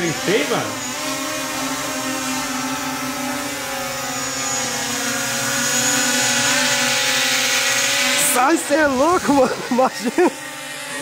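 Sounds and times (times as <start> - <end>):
drone propellers buzzing: 0.0 - 11.0.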